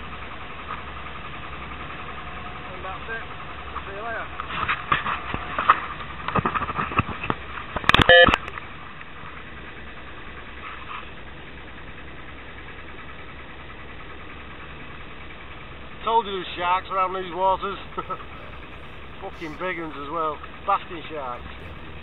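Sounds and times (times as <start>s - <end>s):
boat engine running: 16.2s - 22.0s.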